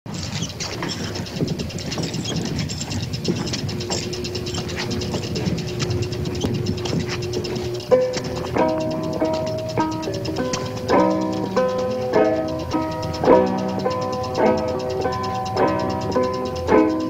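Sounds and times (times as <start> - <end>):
rapid uneven clicking: 0.0 - 17.0
faint steady hum: 0.2 - 17.0.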